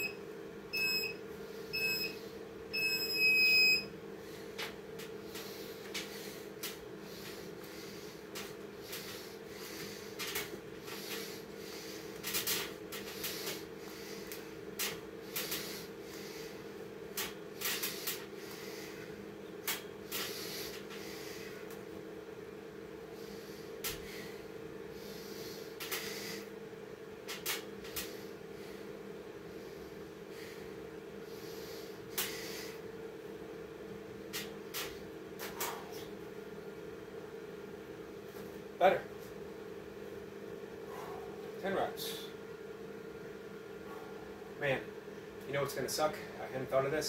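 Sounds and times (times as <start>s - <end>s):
steady low hum: 0.0s - 47.0s
man breathing sharply: 4.2s - 14.6s, 15.2s - 16.8s, 17.6s - 19.2s, 20.0s - 21.8s, 23.1s - 26.6s, 28.0s - 32.9s, 40.8s - 41.5s.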